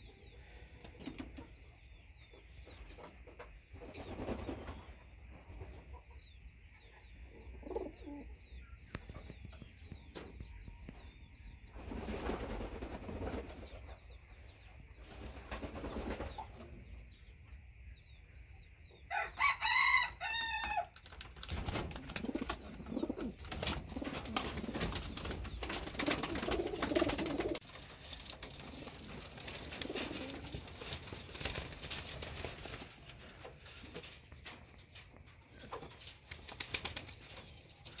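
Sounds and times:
pigeons cooing: 7.3s - 8.4s, 21.8s - 34.2s
pigeon wings clattering: 21.1s - 38.0s.

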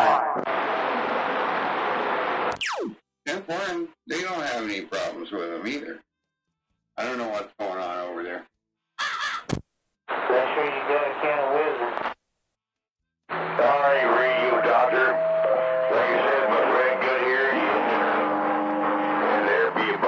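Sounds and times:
garbled radio talk: 10.1s - 12.2s, 13.3s - 15.2s, 15.9s - 18.2s
steady tones changing pitch: 13.3s - 19.5s.

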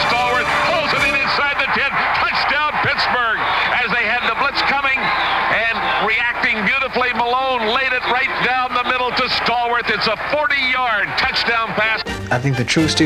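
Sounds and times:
man calling football play-by-play: 0.0s - 13.0s.

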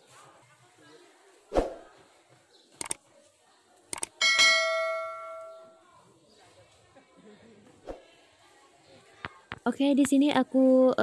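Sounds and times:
sharp clicks: 2.8s - 3.0s, 3.9s - 4.2s
struck metal ringing: 4.2s - 5.7s.

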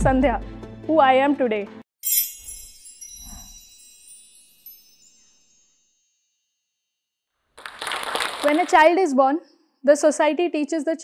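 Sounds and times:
shimmering bell-like chime: 2.0s - 7.0s.

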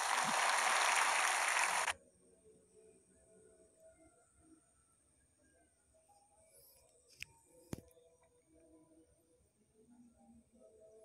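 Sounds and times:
audience applauding: 0.0s - 1.9s.

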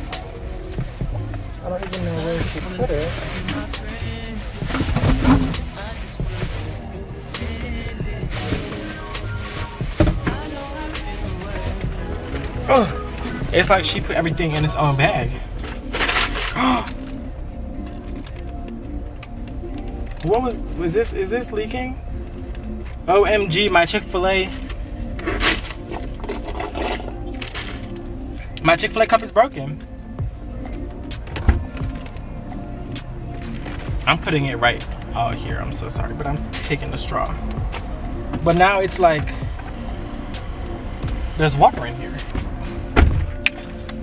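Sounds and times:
song with singing voice: 0.0s - 13.9s
car cabin rumble: 0.0s - 15.9s, 30.2s - 44.0s.

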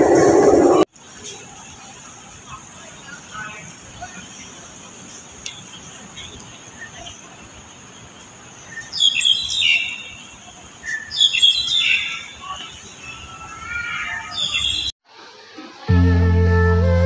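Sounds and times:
small birds chirping: 4.0s - 14.9s.

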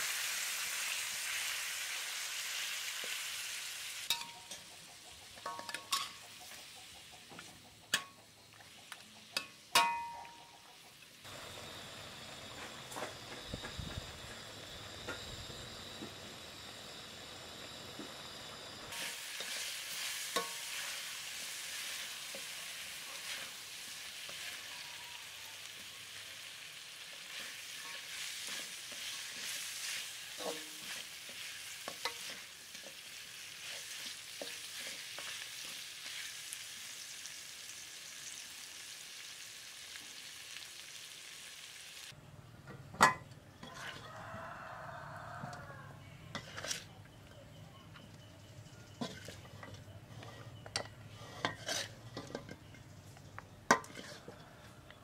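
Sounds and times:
meat sizzling in a pan: 0.0s - 6.8s, 11.3s - 42.2s
spatula scraping and knocking: 46.3s - 46.9s, 48.9s - 52.9s, 53.7s - 54.6s.

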